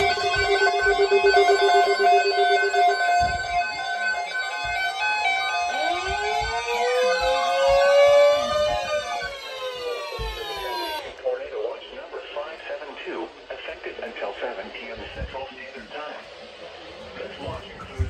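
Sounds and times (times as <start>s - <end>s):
pulsing alarm tones: 0.0s - 11.2s
siren-like sweeps: 0.0s - 11.2s.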